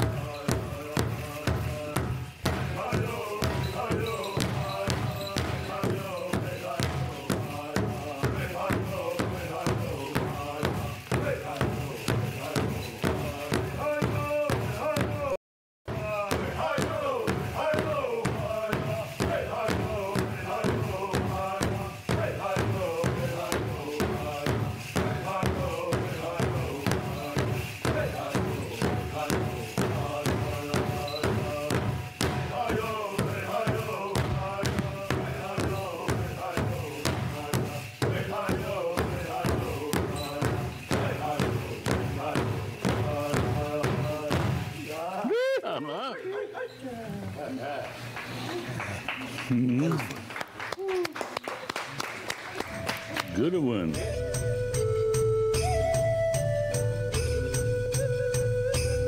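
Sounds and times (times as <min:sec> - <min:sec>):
drum steady beat: 0:00.0 - 0:45.7, 0:52.7 - 0:59.0
voices singing high wavering chant: 0:02.6 - 0:15.0, 0:16.0 - 0:46.1.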